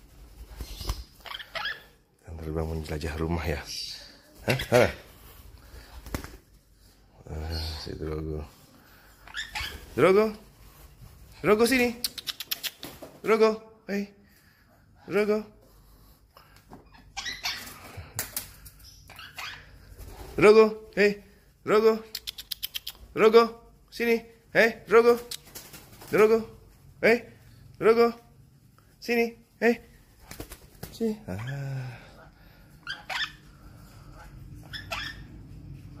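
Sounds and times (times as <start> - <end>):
parakeet scratchy calls: 0.6 - 2.0, 9.2 - 9.9, 19.1 - 19.8, 32.8 - 35.5.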